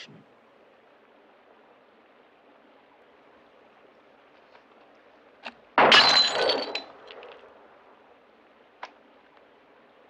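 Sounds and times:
glass bottle shattering: 0:05.8 - 0:07.3.

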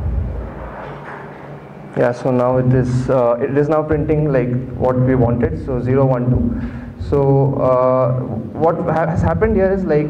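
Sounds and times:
low rumble: 0:00.0 - 0:01.0, 0:02.5 - 0:08.6
dull low thump: 0:03.9 - 0:07.2.

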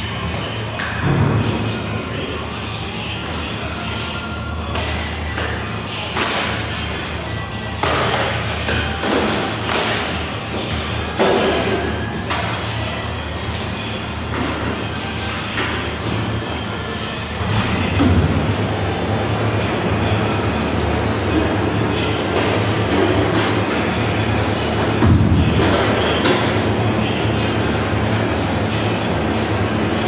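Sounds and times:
kitchen machinery rumbling: 0:00.0 - 0:30.0.

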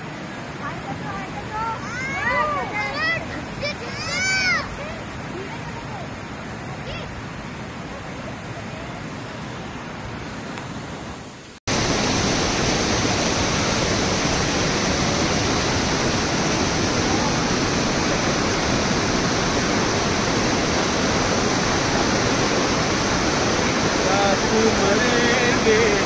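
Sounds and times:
waterfall rushing: 0:00.0 - 0:26.0.

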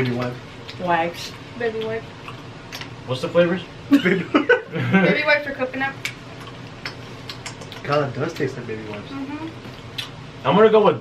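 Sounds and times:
low room noise: 0:00.0 - 0:11.0
mouth clicks chewing: 0:01.8 - 0:03.0, 0:06.0 - 0:10.2.

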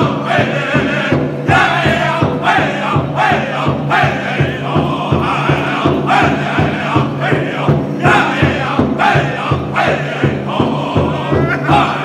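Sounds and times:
large hide drum beating: 0:00.0 - 0:12.0
men singing together: 0:00.0 - 0:12.0.

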